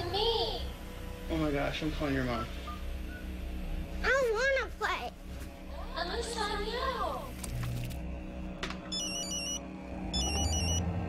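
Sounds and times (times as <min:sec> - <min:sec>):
low background music: 0:00.0 - 0:11.0
phone ringtone melody: 0:08.9 - 0:10.9.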